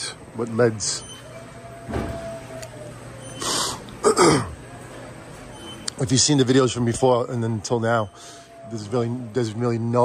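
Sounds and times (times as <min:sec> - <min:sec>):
low store background hum: 0:00.0 - 0:10.0
man clearing his throat: 0:04.0 - 0:04.6.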